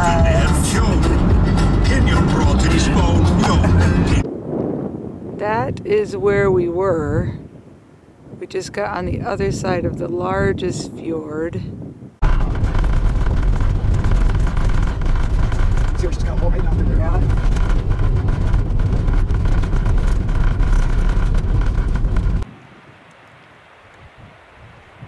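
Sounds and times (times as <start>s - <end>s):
tyres and engine rumbling: 0.0s - 4.3s, 12.2s - 22.5s
gravel crackling under tyres: 12.2s - 25.0s.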